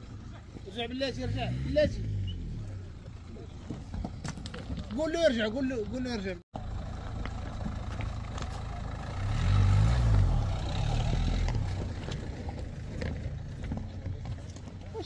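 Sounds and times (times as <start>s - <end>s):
stones knocking under tyres: 3.1s - 5.9s
car engine labouring: 6.6s - 15.0s.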